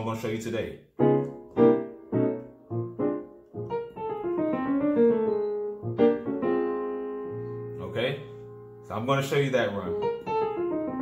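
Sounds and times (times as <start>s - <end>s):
synthesizer piano chords and run: 0.0s - 11.0s.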